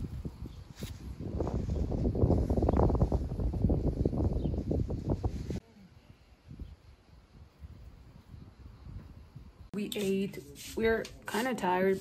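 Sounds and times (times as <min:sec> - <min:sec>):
wind buffeting microphone: 0:00.0 - 0:05.6, 0:06.3 - 0:09.8
faint outdoor background: 0:00.0 - 0:12.0.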